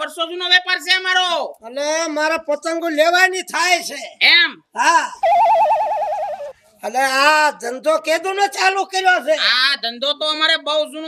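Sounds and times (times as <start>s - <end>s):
phone ringing with warbling trill: 5.2s - 6.6s.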